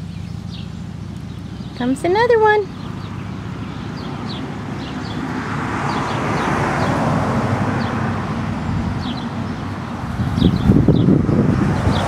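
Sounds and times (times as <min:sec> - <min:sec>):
vehicle passing on road: 0:00.0 - 0:12.0.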